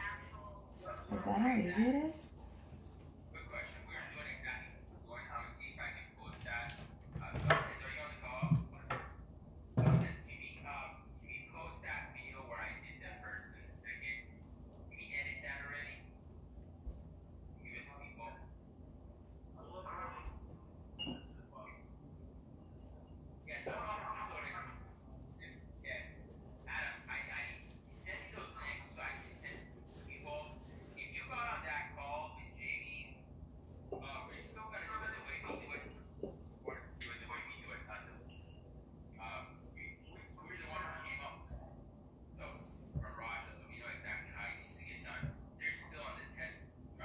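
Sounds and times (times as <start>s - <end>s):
knocks and taps in kitchen: 6.7s - 7.8s, 8.4s - 9.2s, 9.8s - 10.2s.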